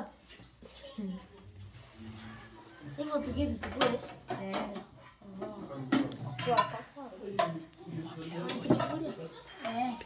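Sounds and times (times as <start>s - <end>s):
plates and spoons clinking: 0.3s - 10.0s.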